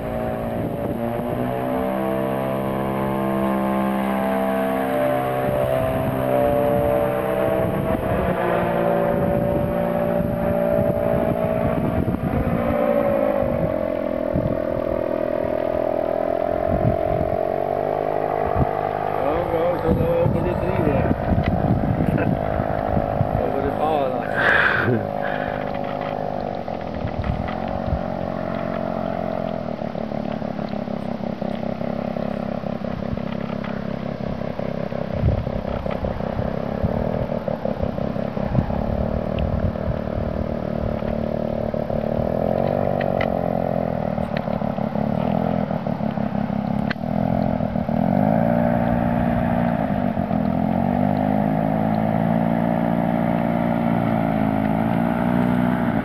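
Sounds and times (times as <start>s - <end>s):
paramotor engine and propeller: 0.0s - 56.0s.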